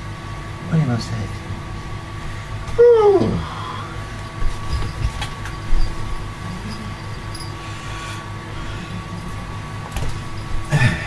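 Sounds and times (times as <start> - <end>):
low mechanical hum: 0.0 - 11.0
knocks and rustles of handling: 4.2 - 6.2.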